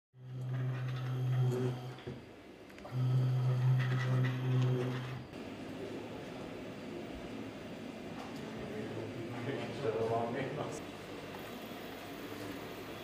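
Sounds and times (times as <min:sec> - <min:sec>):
small electric motor humming: 0:00.2 - 0:02.2, 0:02.8 - 0:05.3.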